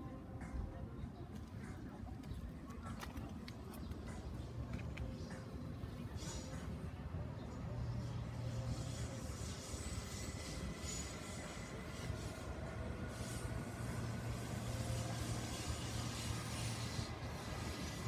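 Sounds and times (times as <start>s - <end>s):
low rumble of city traffic: 0.0s - 18.0s.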